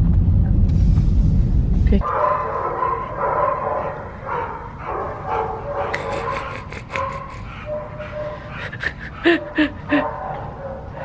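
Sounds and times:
dogs barking and whining: 2.0s - 11.0s.

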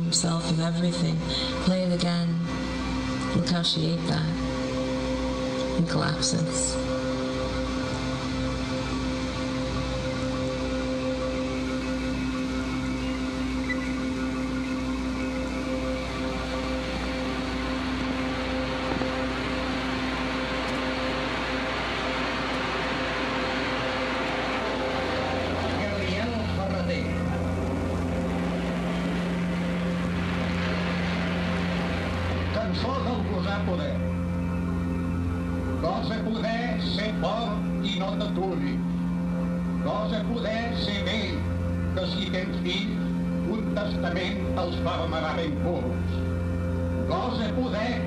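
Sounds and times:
ambient drone tones: 0.0s - 48.0s.

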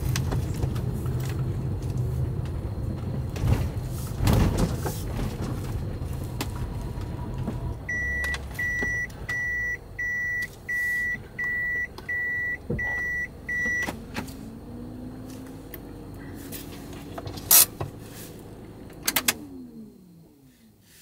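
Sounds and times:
van engine running low: 0.0s - 21.0s
warning buzzer beeping: 7.9s - 13.8s.

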